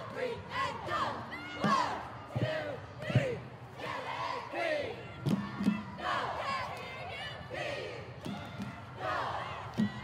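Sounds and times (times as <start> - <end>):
cheerleaders shouting a cheer: 0.0 - 10.0.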